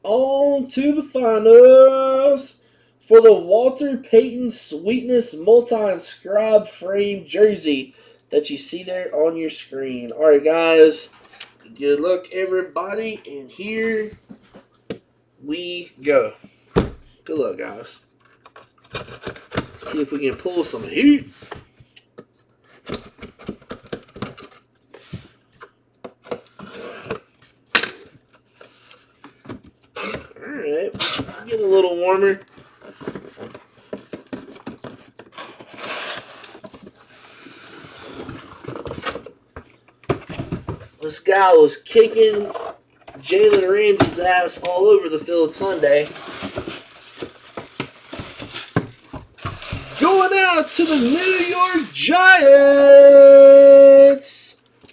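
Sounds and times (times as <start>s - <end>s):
packaging rustling: 43.3s - 52.8s.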